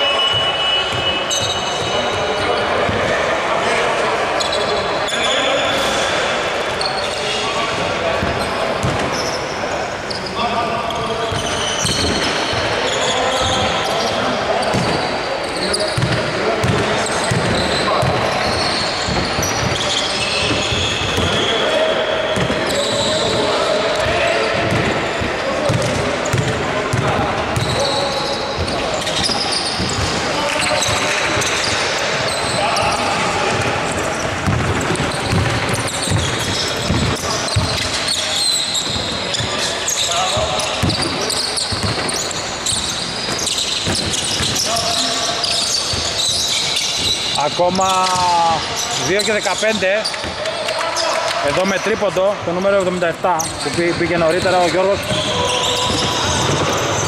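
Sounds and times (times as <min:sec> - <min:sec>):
players' voices: 0:00.0 - 0:57.0
basketball bouncing on hardwood: 0:16.0 - 0:21.4, 0:24.6 - 0:27.7, 0:34.4 - 0:37.8.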